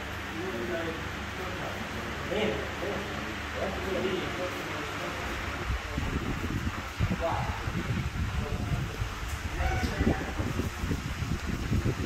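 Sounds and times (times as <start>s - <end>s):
wind buffeting microphone: 5.5s - 12.0s.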